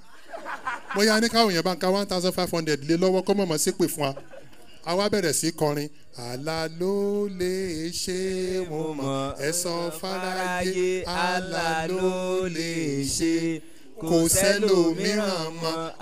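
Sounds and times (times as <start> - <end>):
man chanting into microphone: 6.2 - 16.0.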